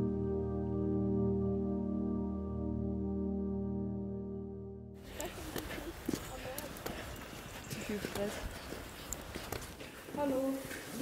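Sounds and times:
footsteps on paved path: 5.0 - 11.0
crutches tapping on pavement: 5.2 - 10.8.

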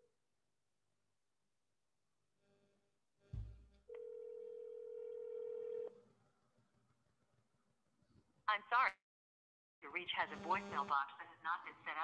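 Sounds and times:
telephone ringback tone: 4.0 - 5.9.

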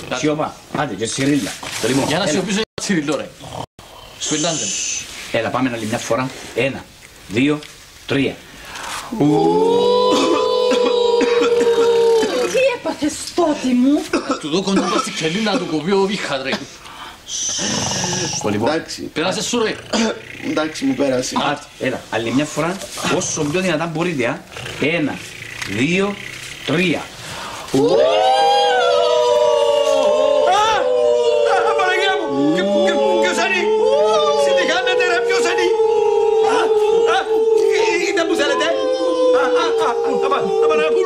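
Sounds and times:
people wailing wooo together: 9.1 - 12.9, 27.7 - 41.0.

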